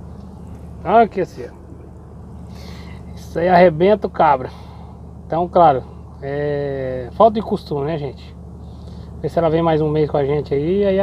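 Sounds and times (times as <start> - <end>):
truck drone from inside cab: 0.0 - 11.0.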